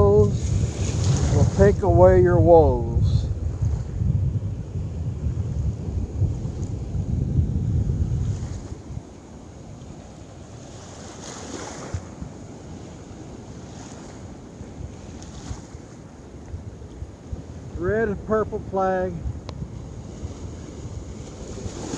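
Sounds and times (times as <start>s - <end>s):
surf on beach: 0.0s - 21.9s
wave rushing up sand: 0.0s - 21.9s
wind buffeting microphone: 0.0s - 21.9s.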